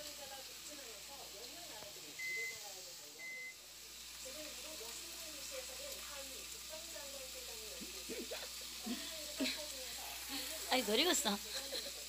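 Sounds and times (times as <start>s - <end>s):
steady sizzle: 0.0s - 12.0s.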